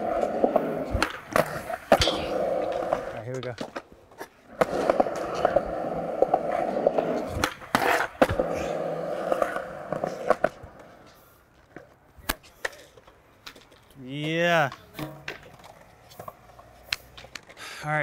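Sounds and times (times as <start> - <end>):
skateboard clacking on concrete: 0.0 - 17.7
skateboard wheels rolling on concrete: 0.0 - 18.0.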